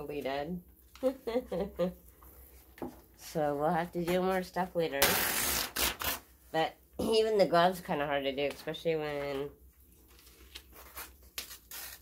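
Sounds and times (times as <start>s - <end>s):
paper rustling and rubbing: 8.6s - 12.0s.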